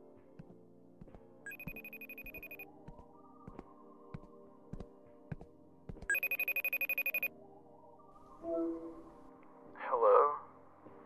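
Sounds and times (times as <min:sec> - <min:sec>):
soft background music: 0:00.0 - 0:11.0
trilling electronic ring: 0:01.5 - 0:02.6.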